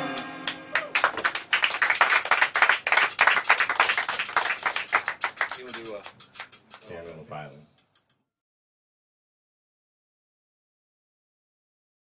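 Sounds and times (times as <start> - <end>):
small audience clapping: 0.1 - 6.9.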